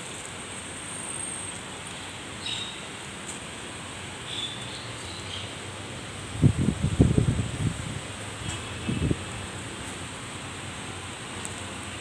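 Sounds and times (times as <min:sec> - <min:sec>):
steady outdoor hiss: 0:00.0 - 0:12.0
wind buffeting microphone: 0:06.2 - 0:09.3.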